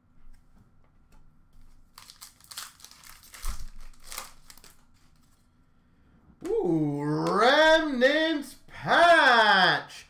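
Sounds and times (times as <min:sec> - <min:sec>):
foil wrapper crinkling: 0:01.6 - 0:05.4.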